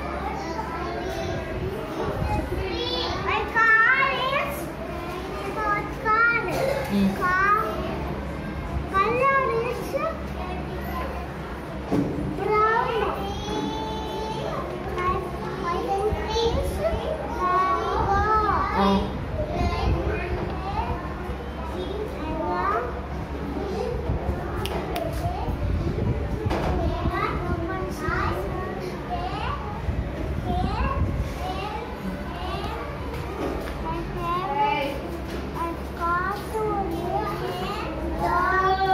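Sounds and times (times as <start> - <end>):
children chattering: 0.0 - 38.9.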